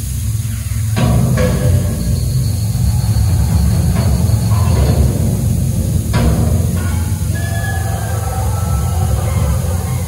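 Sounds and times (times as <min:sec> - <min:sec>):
deep taiko drumming rumble: 0:00.0 - 0:10.0.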